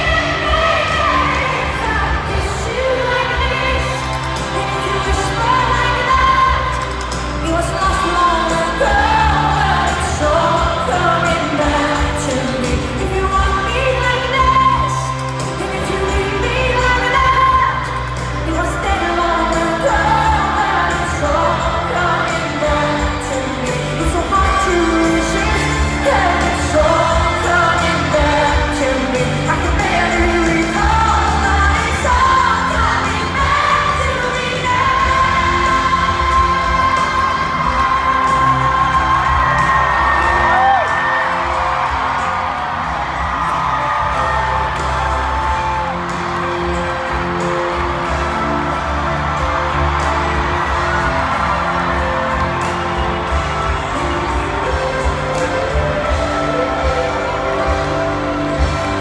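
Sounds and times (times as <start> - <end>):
pop ballad live band: 0.0 - 59.0
crowd whooping: 36.4 - 59.0.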